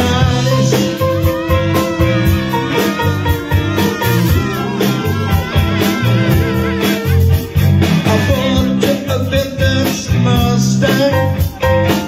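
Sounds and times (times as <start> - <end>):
blues band playing: 0.0 - 12.0.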